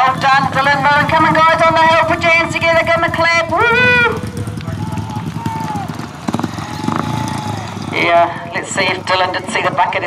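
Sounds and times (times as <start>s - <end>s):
motorbike engines pulsing: 0.0s - 10.0s.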